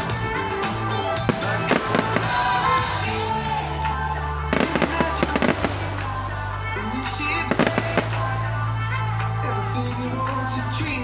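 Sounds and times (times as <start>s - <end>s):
music playing: 0.0s - 11.0s
fireworks crackling and banging: 0.8s - 3.2s, 4.5s - 8.6s.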